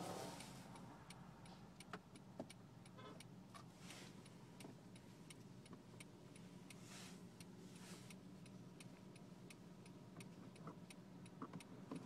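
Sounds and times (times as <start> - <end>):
turn signal ticking: 0.0 - 12.0.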